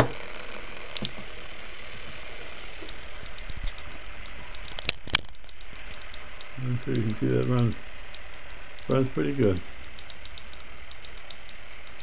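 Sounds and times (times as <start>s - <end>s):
motor humming: 0.0s - 12.0s
light ticking: 4.1s - 9.2s, 9.8s - 12.0s.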